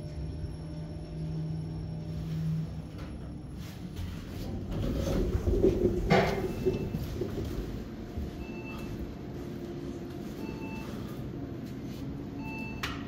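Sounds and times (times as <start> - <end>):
steady background hum: 0.0 - 13.0.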